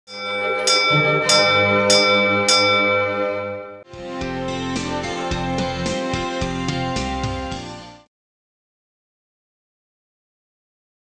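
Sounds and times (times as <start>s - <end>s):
metal bell struck with mallet: 0.1s - 3.8s.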